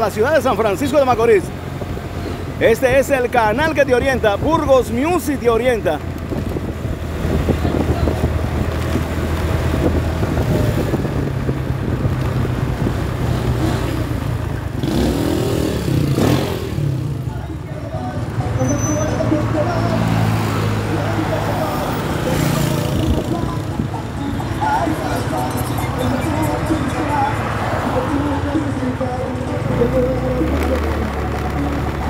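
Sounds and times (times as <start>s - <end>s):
road and wind noise: 0.0s - 32.0s
vehicle engine running: 5.7s - 32.0s
motorcycle passing: 6.0s - 32.0s.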